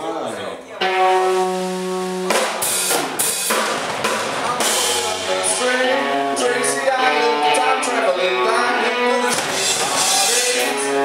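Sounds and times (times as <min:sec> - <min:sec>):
rock band held note: 0:00.8 - 0:11.0
drum kit hits and cymbal crashes: 0:00.9 - 0:06.2, 0:09.2 - 0:11.0.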